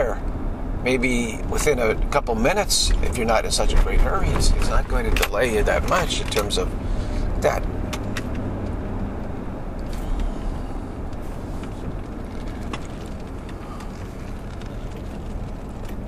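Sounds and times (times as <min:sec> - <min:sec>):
car engine and road noise: 0:00.0 - 0:16.0.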